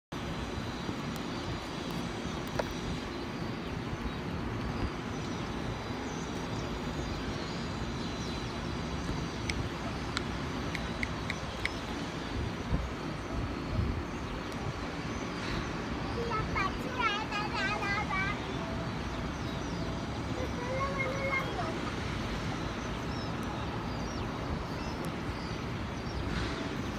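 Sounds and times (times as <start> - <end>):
distant jet engines rumbling: 0.2 - 26.9
low unsteady noise: 0.2 - 26.9.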